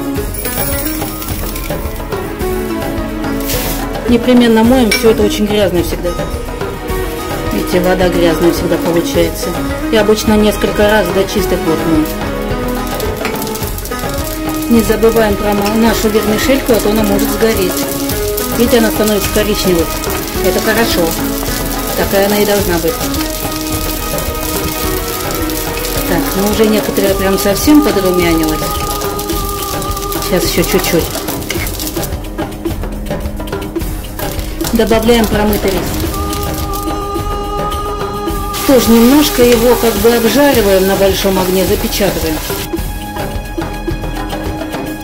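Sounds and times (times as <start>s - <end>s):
vermicelli sizzling in butter: 0.0s - 37.1s, 38.2s - 42.9s
background music: 0.0s - 45.0s
dry rice grains rattling: 0.3s - 2.2s, 11.7s - 32.2s, 34.0s - 42.7s.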